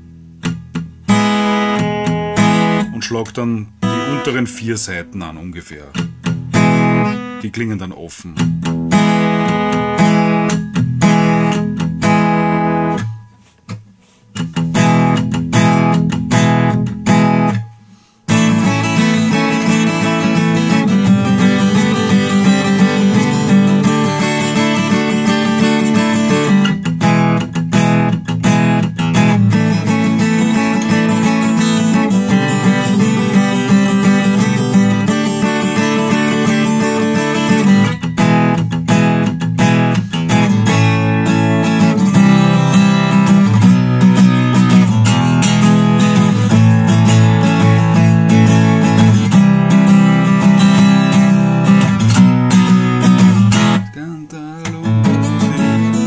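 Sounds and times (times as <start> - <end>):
acoustic guitar strumming: 0.0 - 56.0.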